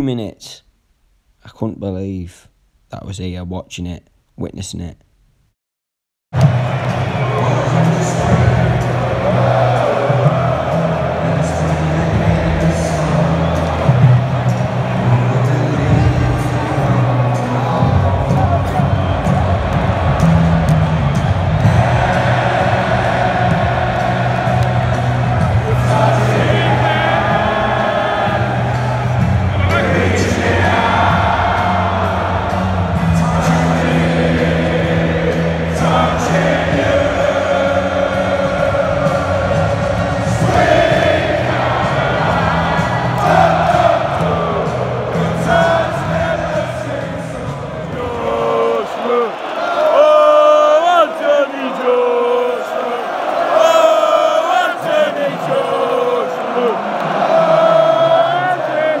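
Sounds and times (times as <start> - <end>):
crowd singing along: 6.4 - 59.0
music over stadium loudspeakers: 6.4 - 59.0.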